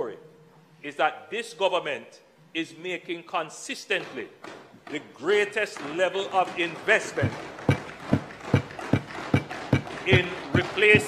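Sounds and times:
hands banging on wooden desks: 0:04.0 - 0:11.0.

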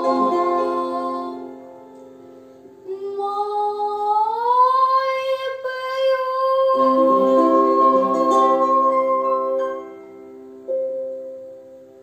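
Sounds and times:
boy singing: 0:00.0 - 0:01.6, 0:02.8 - 0:09.7.

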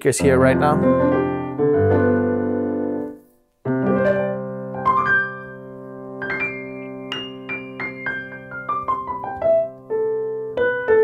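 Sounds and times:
piano chords: 0:00.0 - 0:11.0
piano melody of single notes: 0:00.0 - 0:11.0.

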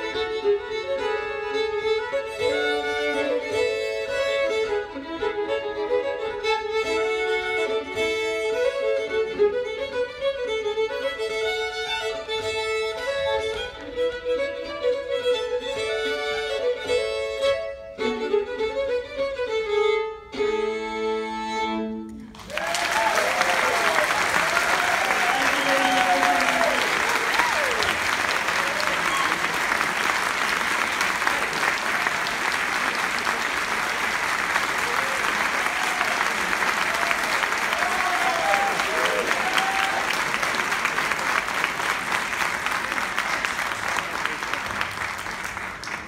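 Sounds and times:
audience applauding: 0:22.2 - 0:46.0
voices whooping and cheering: 0:22.5 - 0:29.6, 0:34.8 - 0:40.3.

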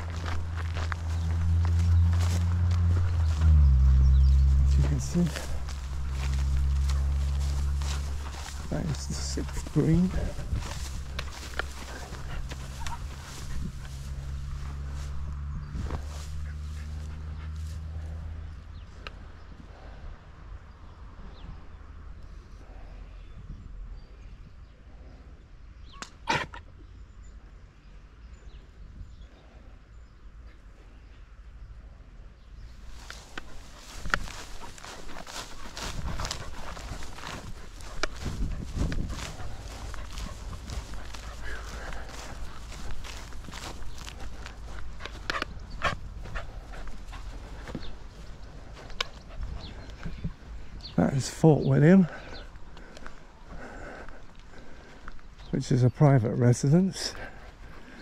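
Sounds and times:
footsteps through grass: 0:00.0 - 0:18.4, 0:32.7 - 0:56.1.

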